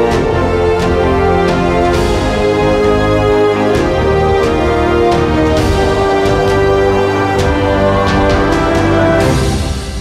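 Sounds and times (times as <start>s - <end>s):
news theme music with hits: 0.0s - 10.0s.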